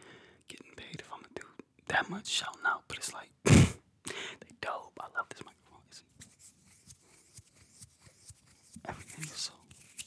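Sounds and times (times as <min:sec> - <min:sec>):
fingertips rubbing eyebrow hair: 0:06.1 - 0:10.0.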